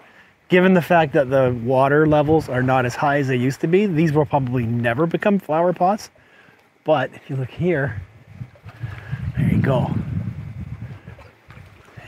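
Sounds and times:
wind buffeting microphone: 1.0 - 3.0, 7.5 - 12.0.

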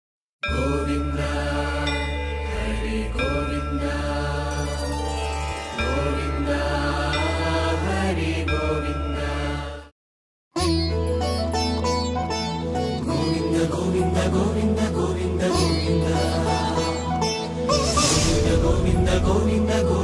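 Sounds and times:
mantra-style chanting: 0.5 - 4.8, 13.1 - 17.2, 18.0 - 20.0
steady low drone: 17.8 - 20.0.

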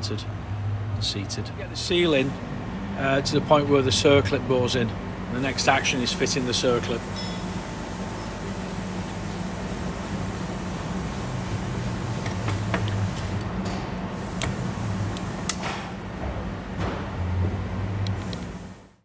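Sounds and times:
low machine hum: 0.0 - 19.0.

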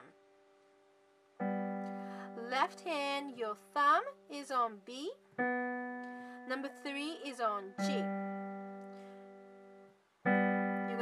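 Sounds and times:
piano chord ringing: 1.4 - 3.0, 5.4 - 11.0.

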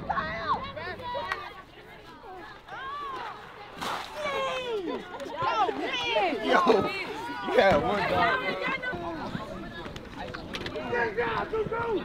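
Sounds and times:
young players shouting and whooping: 4.2 - 9.9.

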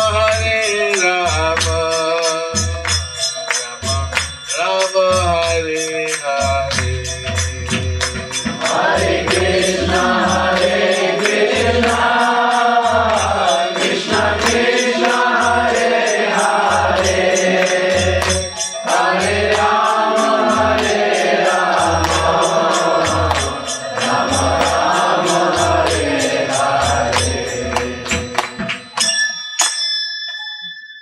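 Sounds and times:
hand cymbal strikes: 0.0 - 31.0
voices chanting in melody: 8.6 - 28.6.

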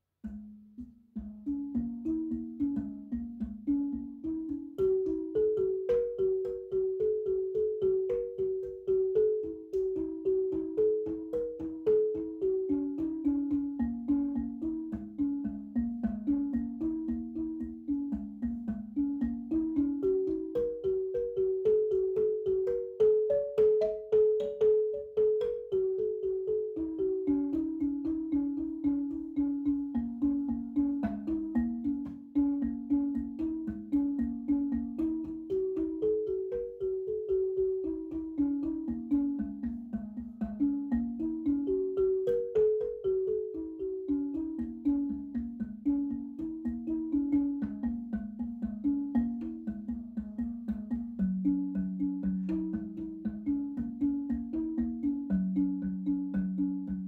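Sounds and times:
marimba music: 0.0 - 57.0.

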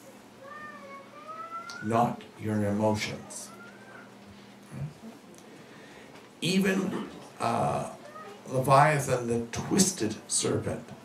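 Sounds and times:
cat meowing: 0.4 - 1.9, 3.2 - 4.2.

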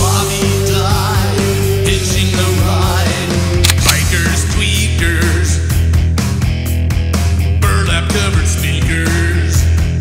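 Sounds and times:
rock band music: 0.0 - 10.0.

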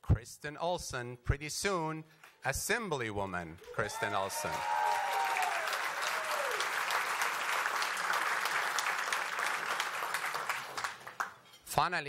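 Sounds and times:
audience applauding: 3.6 - 11.4.

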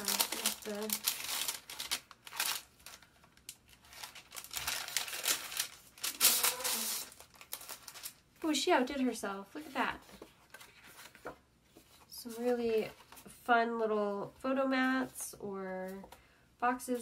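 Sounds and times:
paper bag rustling and crinkling: 0.0 - 8.2.

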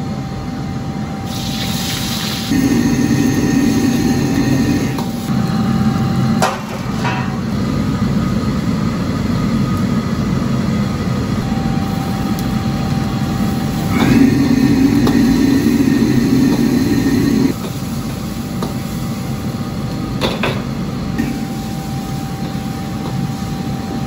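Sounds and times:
gas burner flame rushing: 1.2 - 9.4, 11.3 - 24.0.

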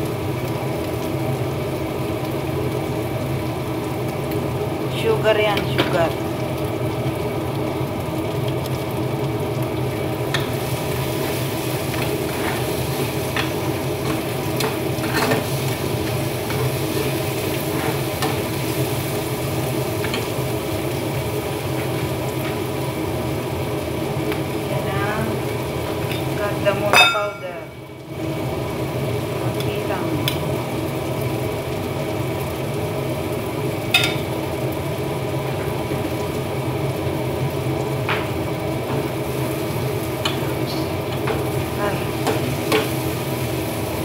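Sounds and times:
food sizzling in a pan: 0.0 - 44.0.

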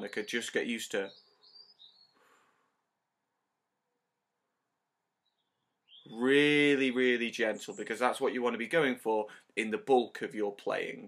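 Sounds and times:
soft breath: 2.1 - 2.9.

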